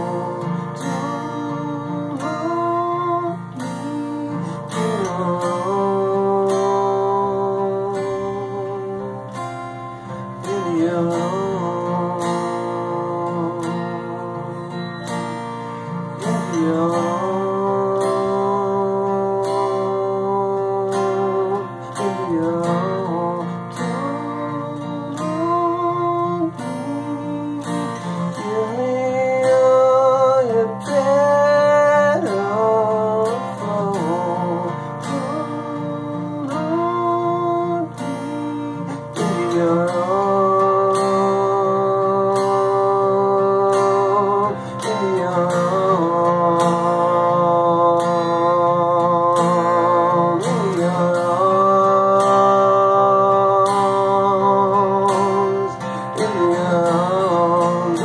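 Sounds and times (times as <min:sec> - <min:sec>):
acoustic guitar: 0:00.0 - 0:58.0
man singing long held notes: 0:00.0 - 0:58.0.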